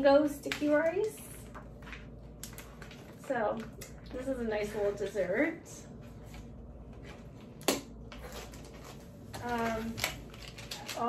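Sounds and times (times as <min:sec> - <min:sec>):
hands rummaging snack packets: 0:08.1 - 0:11.0.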